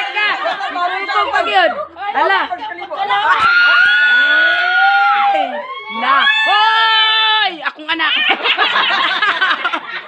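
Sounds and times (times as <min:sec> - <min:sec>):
people squealing: 0:03.2 - 0:07.5.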